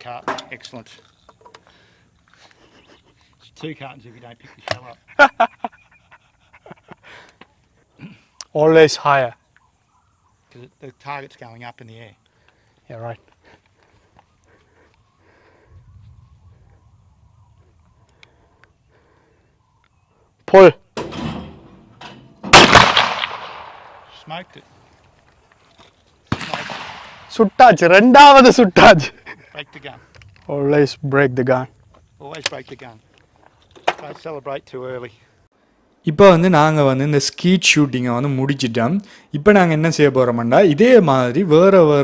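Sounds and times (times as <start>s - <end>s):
shotgun shot with echo: 22.4s - 24.1s, 26.3s - 27.4s.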